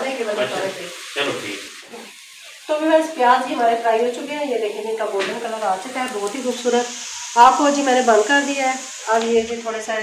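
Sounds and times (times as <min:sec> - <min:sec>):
onions sizzling in oil: 0:00.0 - 0:10.0.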